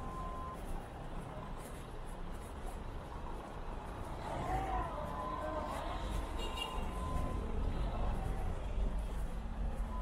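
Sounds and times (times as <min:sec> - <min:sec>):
car engines and tyres rumbling: 0:00.0 - 0:10.0.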